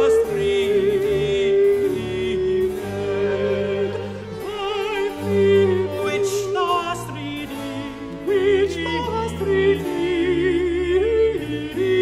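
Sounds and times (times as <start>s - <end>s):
person singing with vibrato: 0.0s - 12.0s
strings and keyboard: 0.0s - 12.0s.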